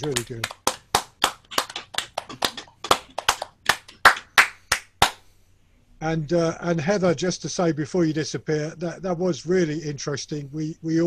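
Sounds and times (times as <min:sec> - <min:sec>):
person clapping hands: 0:00.0 - 0:05.2.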